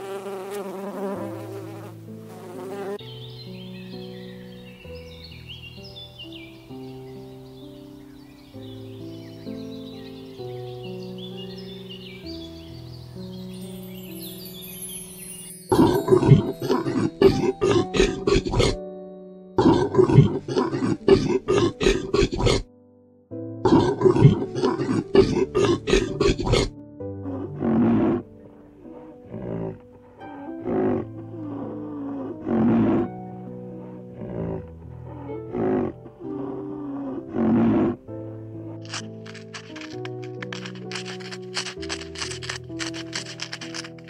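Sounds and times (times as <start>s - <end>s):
soft background music: 0.0s - 44.0s
rapid animal calls: 23.7s - 26.7s.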